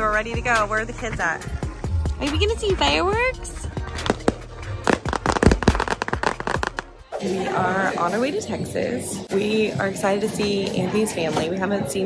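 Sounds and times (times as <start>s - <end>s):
fireworks cracking and popping: 3.8s - 6.9s.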